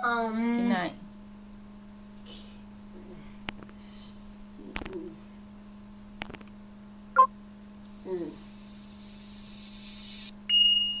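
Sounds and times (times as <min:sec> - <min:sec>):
low steady hum: 0:00.0 - 0:11.0
steady high hiss: 0:07.6 - 0:10.4.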